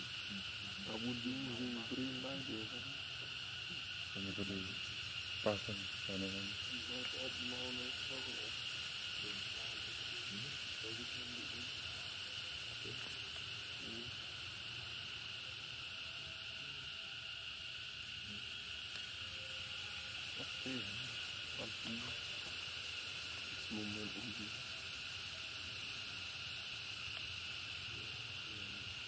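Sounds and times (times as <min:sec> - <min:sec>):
insects droning: 0:00.0 - 0:29.0
faint voices talking: 0:20.4 - 0:22.3.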